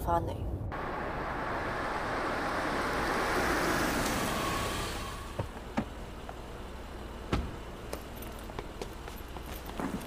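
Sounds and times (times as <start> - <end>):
car engine and tyres hissing: 0.8 - 10.0.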